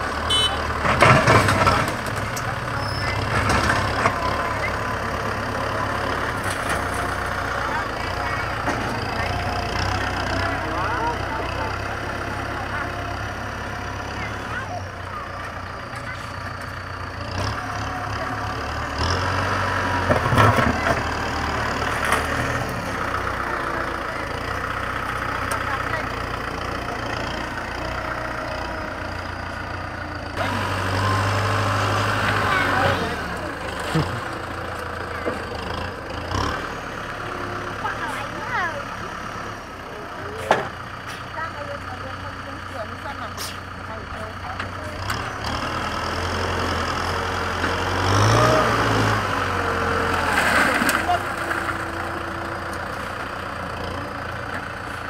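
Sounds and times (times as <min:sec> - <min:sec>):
tractor diesel engine running: 0:00.0 - 0:55.0.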